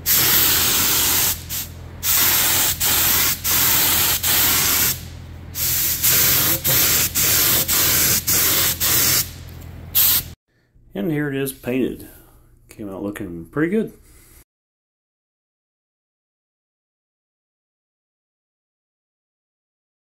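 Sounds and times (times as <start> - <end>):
paint spray gun hissing: 0.0 - 5.0, 5.6 - 10.4
steady low hum: 0.0 - 14.4.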